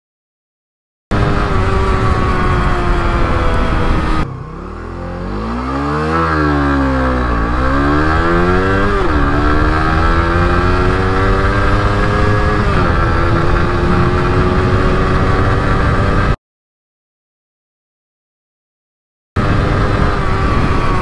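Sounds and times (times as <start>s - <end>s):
motorcycle engine accelerating: 1.1s - 16.4s, 19.4s - 21.0s.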